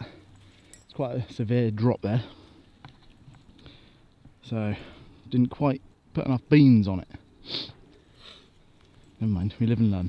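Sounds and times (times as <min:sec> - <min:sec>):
faint breath: 0:03.5 - 0:05.2, 0:07.4 - 0:09.1
person sniffing: 0:07.4 - 0:08.5.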